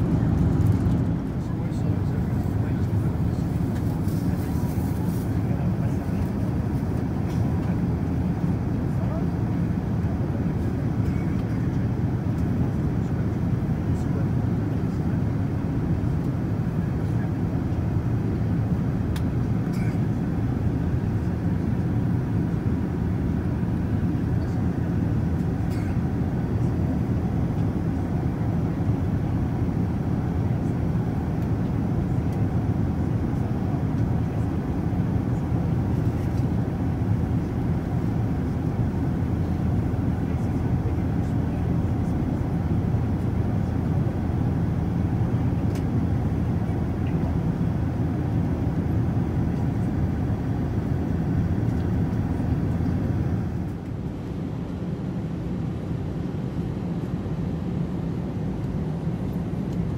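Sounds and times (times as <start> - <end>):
airliner cabin rumble: 0.0 - 59.9.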